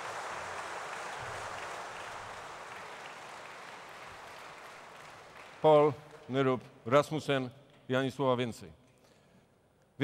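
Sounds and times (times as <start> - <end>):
large audience applauding: 0.0 - 6.3.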